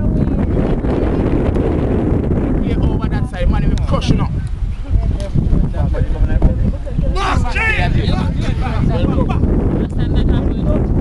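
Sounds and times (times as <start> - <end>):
wind buffeting microphone: 0.0 - 11.0
loud high shout: 7.1 - 7.9
people shouting: 7.1 - 8.2.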